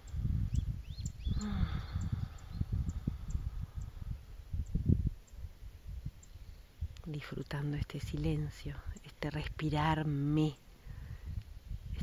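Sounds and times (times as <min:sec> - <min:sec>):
faint bird chirps: 0:00.0 - 0:06.9
wind buffeting microphone: 0:00.0 - 0:12.0.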